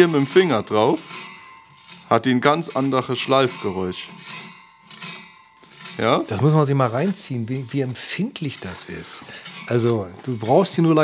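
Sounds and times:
mower blades scraping metal: 0.0s - 11.0s.

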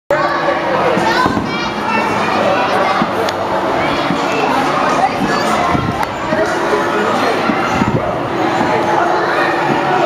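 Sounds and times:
children chattering and calling out: 0.1s - 10.0s.

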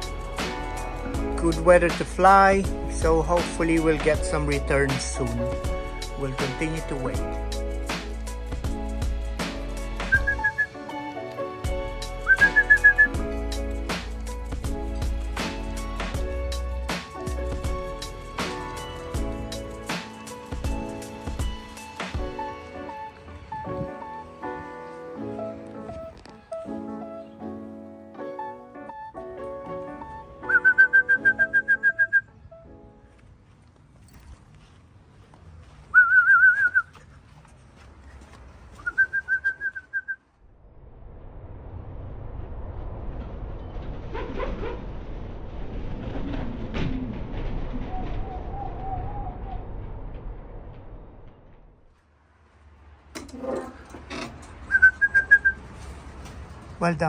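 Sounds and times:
background music: 0.0s - 33.5s
person whistling short calls: 10.1s - 10.8s, 12.2s - 13.2s, 30.4s - 32.3s, 35.9s - 37.0s, 38.8s - 40.2s, 54.7s - 55.6s
rushing noise: 40.4s - 56.8s.

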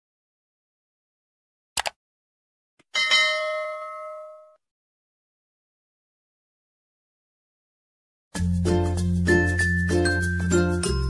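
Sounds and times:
notification bell: 3.0s - 4.6s.

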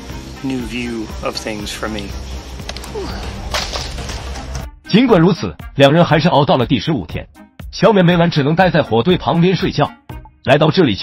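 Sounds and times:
narration: 0.4s - 3.4s, 4.8s - 11.0s.

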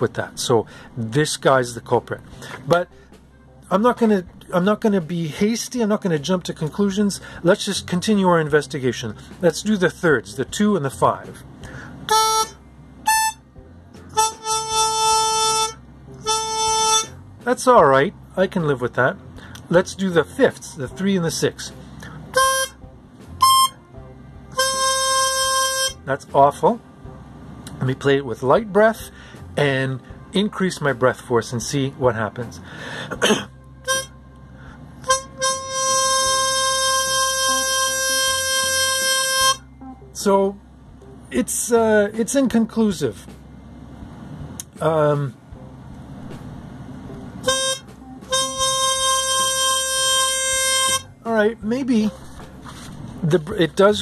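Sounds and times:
harmonica octave notes: 12.1s - 17.2s, 22.3s - 26.4s, 33.2s - 34.2s, 35.0s - 40.2s, 46.2s - 54.0s.

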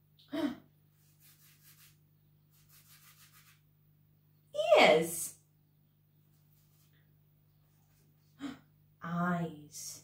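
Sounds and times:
fingertip scratching on floured paper: 1.0s - 3.6s.

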